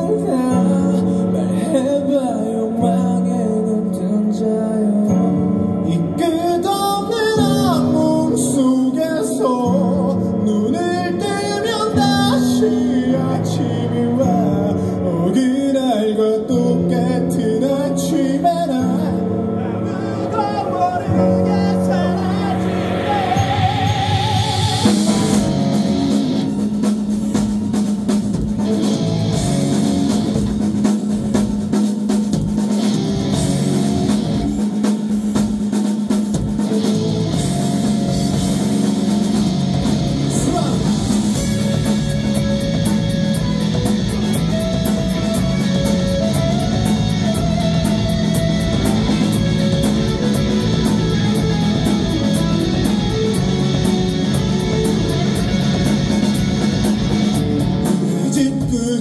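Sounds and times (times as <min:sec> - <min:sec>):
person singing: 0:00.0 - 0:25.6, 0:40.2 - 0:55.5, 0:57.9 - 0:59.0
live rock band: 0:00.0 - 0:59.0.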